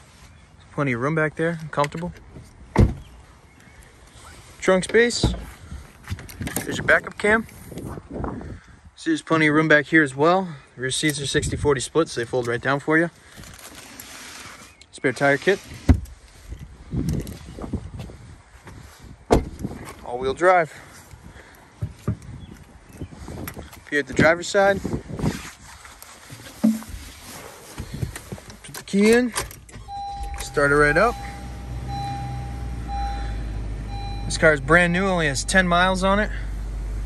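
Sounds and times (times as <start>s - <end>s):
warning chime beeping: 29.9s - 36.1s.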